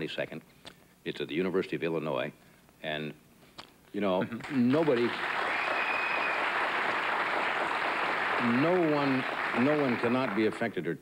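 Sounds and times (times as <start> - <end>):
audience applauding: 4.3 - 10.7.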